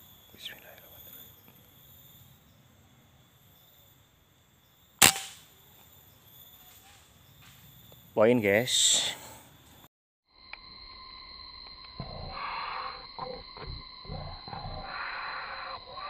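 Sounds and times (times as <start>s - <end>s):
air rifle shot: 5.0s - 5.5s.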